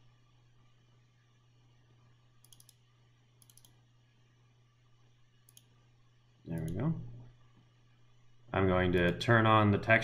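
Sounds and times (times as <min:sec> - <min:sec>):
computer mouse clicks: 0:02.4 - 0:03.8, 0:05.4 - 0:05.8.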